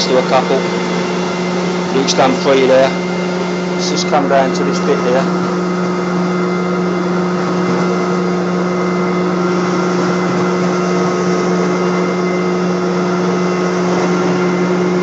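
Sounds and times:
carpet cleaner motor hum: 0:00.0 - 0:15.0.

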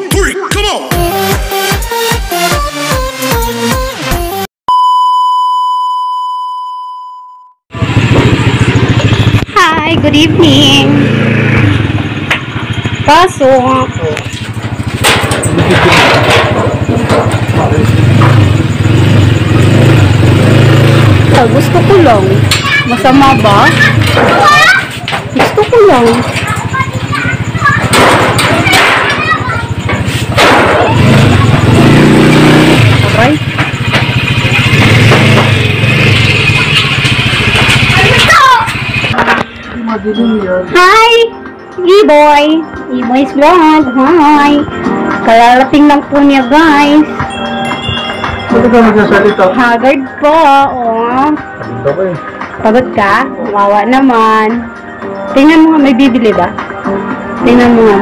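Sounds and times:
electronic beep: 0:04.7 - 0:07.6, 0:40.0 - 0:40.7, 0:46.2 - 0:49.9
motor scooter engine idling: 0:07.7 - 0:24.1, 0:25.2 - 0:39.2.

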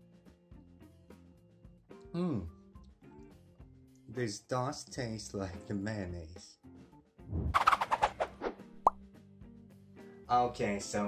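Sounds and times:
faint steady music tone: 0:00.0 - 0:07.2, 0:09.0 - 0:11.0
quick rising plop: 0:07.3 - 0:09.0.

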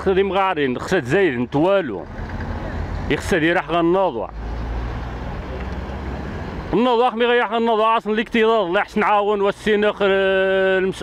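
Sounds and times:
man speaking: 0:00.0 - 0:02.1, 0:03.1 - 0:04.4, 0:06.7 - 0:11.0
vehicle engine rumbling: 0:00.0 - 0:11.0.

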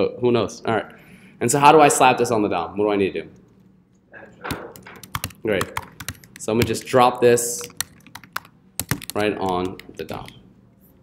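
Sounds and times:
computer keyboard typing: 0:04.5 - 0:10.4.

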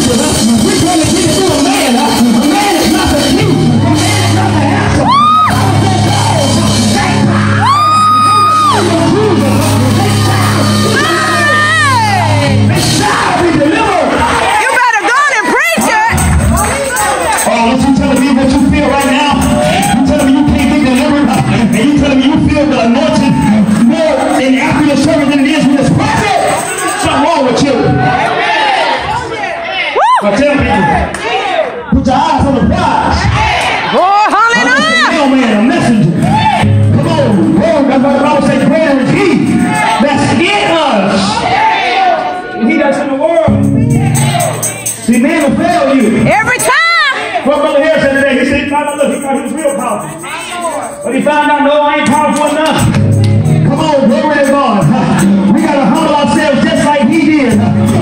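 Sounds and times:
man shouting through a microphone: 0:00.0 - 0:52.9
congregation voices: 0:00.0 - 0:58.0
voices singing: 0:02.7 - 0:20.7.

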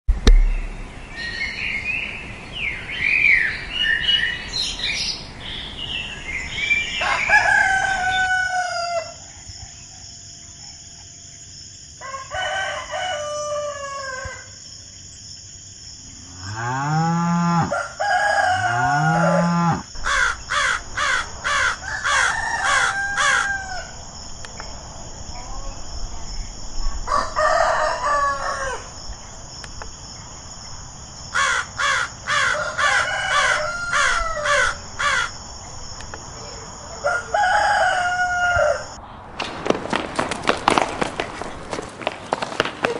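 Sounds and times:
rooster crowing: 0:07.0 - 0:10.2, 0:12.0 - 0:14.6, 0:16.4 - 0:24.0, 0:27.1 - 0:29.0, 0:31.4 - 0:35.4, 0:37.0 - 0:39.0.

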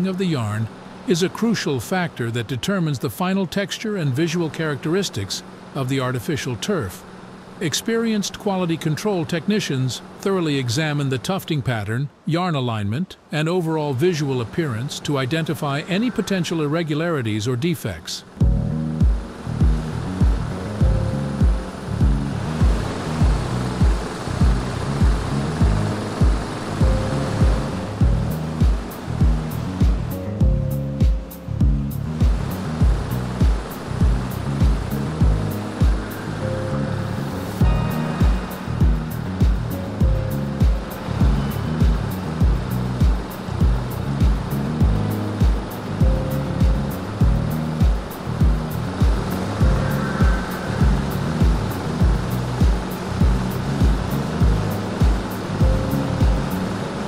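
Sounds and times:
steady noise: 0:00.0 - 0:57.0
background music with steady beat: 0:18.3 - 0:57.0.

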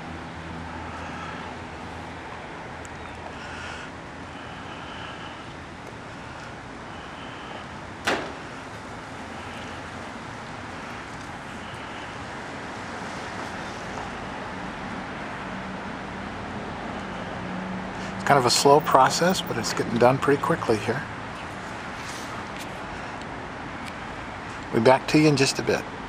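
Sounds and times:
road traffic: 0:00.0 - 0:26.0
sharp knock: 0:08.0 - 0:08.4.

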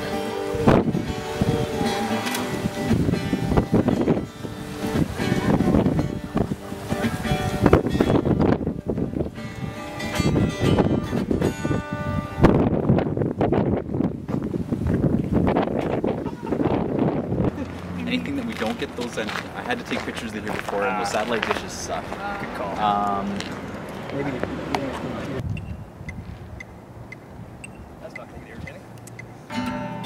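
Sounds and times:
wind buffeting microphone: 0:00.0 - 0:29.5.

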